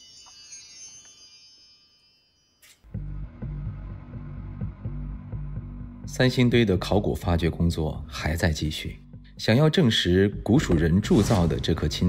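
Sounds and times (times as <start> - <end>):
shimmering chime: 0.0 - 2.9.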